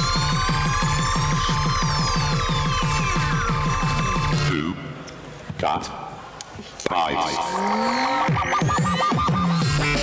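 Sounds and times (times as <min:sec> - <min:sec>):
electronic jingle over speakers: 0:00.0 - 0:04.7, 0:06.9 - 0:10.0.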